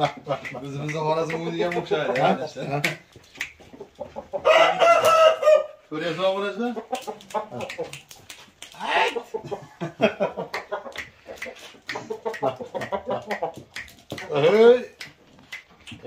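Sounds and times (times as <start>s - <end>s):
people talking: 0.0s - 3.0s, 8.7s - 9.2s, 14.2s - 15.0s
roosters crowing: 4.1s - 5.9s.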